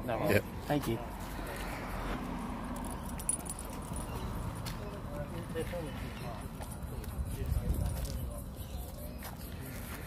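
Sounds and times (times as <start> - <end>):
keys jingling: 2.7 - 4.7.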